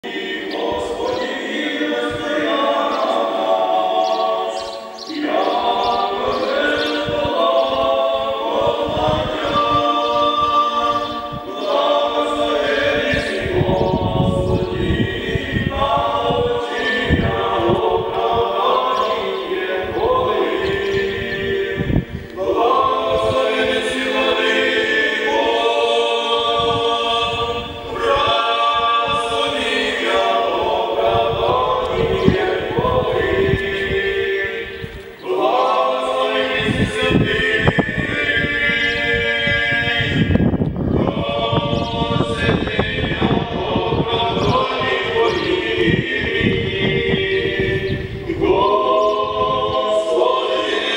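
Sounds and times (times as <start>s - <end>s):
unaccompanied choir singing: 0.0s - 50.9s.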